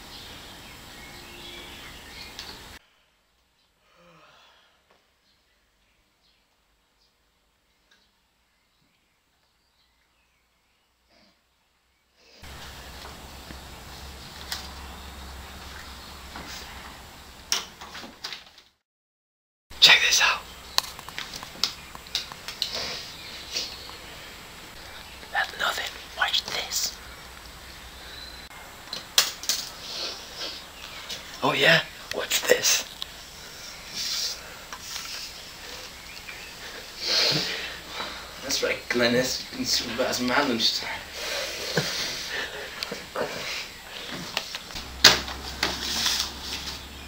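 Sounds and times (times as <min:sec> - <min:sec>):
person whispering: 0:19.8 - 0:20.5, 0:24.8 - 0:27.0.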